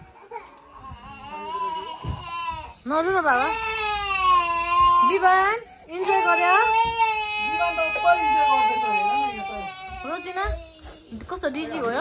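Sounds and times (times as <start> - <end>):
toddler crying: 0.0 - 11.0.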